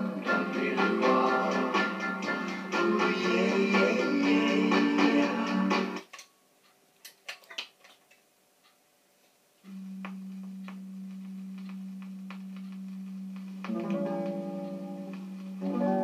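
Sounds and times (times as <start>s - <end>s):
record music: 0.0s - 6.2s, 9.6s - 16.0s
speaker hum with faint ticks: 6.0s - 16.0s.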